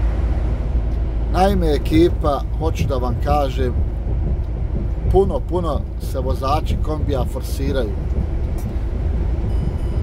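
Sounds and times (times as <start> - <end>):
truck engine running: 0.0 - 10.0
tyres on wet road: 0.0 - 10.0.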